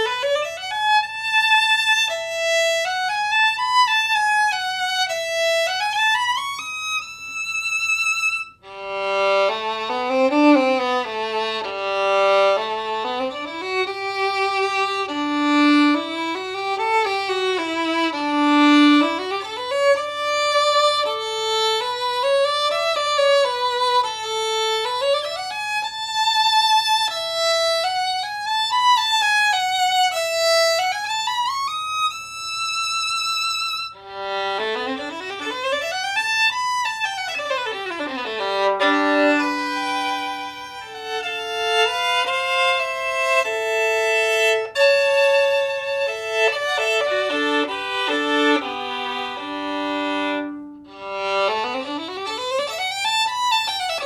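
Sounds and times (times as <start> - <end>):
solo violin melody with vibrato: 0.0 - 54.0.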